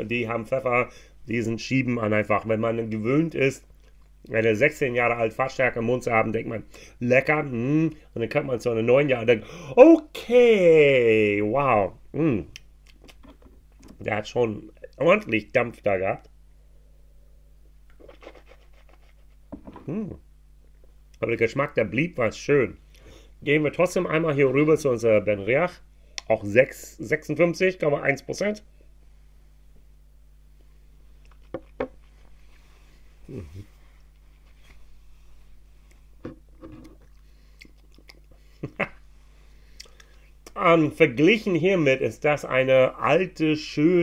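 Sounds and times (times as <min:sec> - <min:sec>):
man humming: 0:12.2 - 0:12.6, 0:19.7 - 0:20.3, 0:33.2 - 0:33.8
lip smacks: 0:12.5 - 0:14.0, 0:17.9 - 0:19.4, 0:31.2 - 0:32.1, 0:36.8 - 0:38.4, 0:39.7 - 0:40.6
short low hum: 0:28.6 - 0:40.4
man sipping and swallowing: 0:36.2 - 0:38.4.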